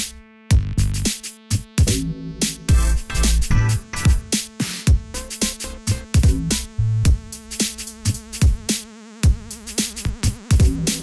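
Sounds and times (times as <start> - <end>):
drum machine beat: 0.0 - 11.0.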